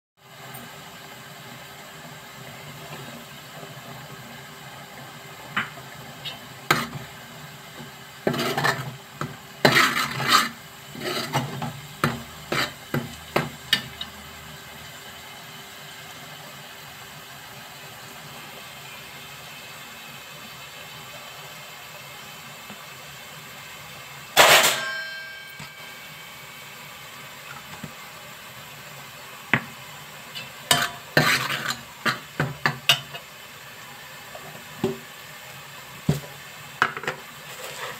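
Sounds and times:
loud metallic clang: 24.4 - 25.8.

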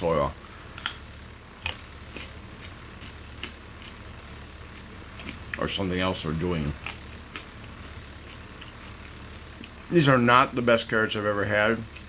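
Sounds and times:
low steady hum: 0.0 - 12.0
person chewing raw carrot: 1.6 - 5.8, 6.6 - 9.9.

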